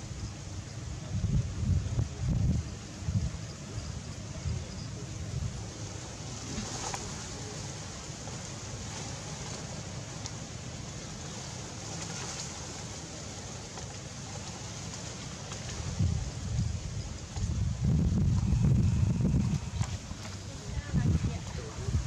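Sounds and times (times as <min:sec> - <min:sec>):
wind on microphone: 0:00.0 - 0:09.5, 0:15.5 - 0:22.0.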